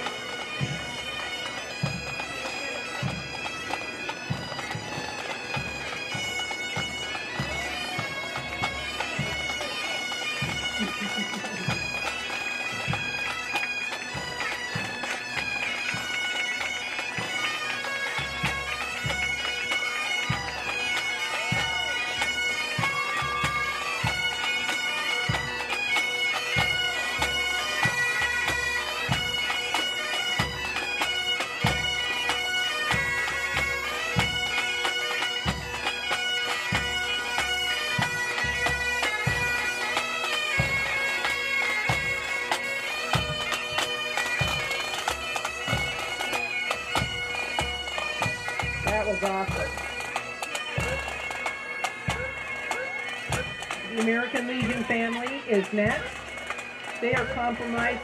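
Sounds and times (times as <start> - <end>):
bagpipes playing a tune: 0.0 - 58.0.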